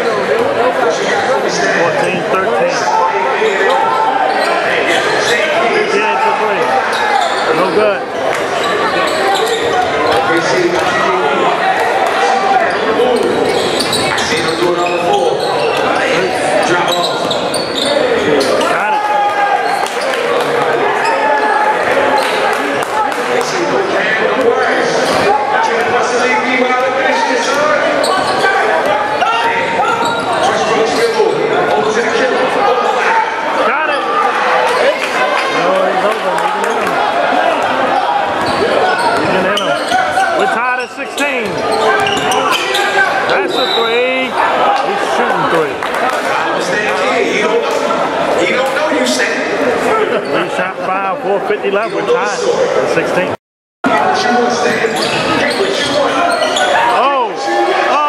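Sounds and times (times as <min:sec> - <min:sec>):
voices echoing in hall: 0:00.0 - 0:58.0.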